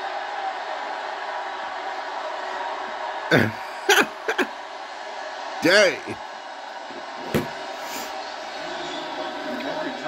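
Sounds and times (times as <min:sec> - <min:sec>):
crowd din: 0:02.1 - 0:10.0
commentator speaking: 0:05.6 - 0:06.2.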